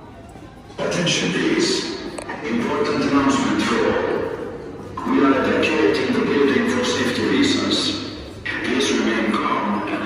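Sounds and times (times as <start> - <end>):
voice over public address: 0.7 - 10.0.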